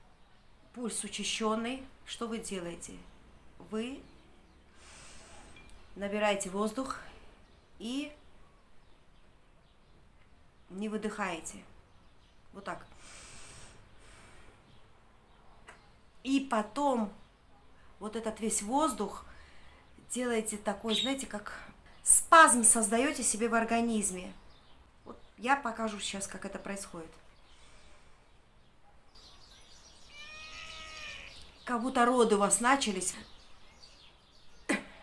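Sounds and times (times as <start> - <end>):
woman breathing: 4.7 - 5.5, 13.0 - 14.7, 27.4 - 28.4
woman inhaling through nose: 4.7 - 5.5, 13.0 - 14.6.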